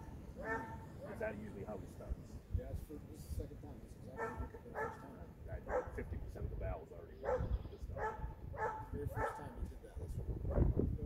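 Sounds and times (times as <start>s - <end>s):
dog yipping: 0.4s - 1.2s, 4.2s - 5.1s, 5.7s - 6.0s, 7.2s - 9.5s.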